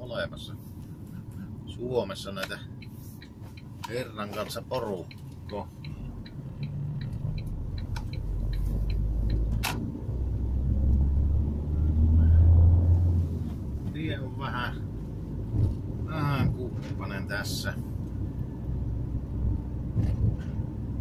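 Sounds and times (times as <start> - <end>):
turn signal ticking: 0.8 - 11.8
car engine accelerating: 5.8 - 21.0.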